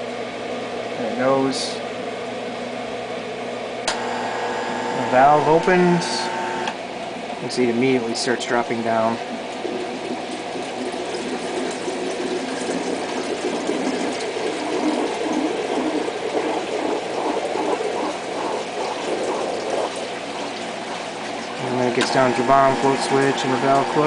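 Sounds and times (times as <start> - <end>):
water rushing down a drain: 8.0 - 24.0.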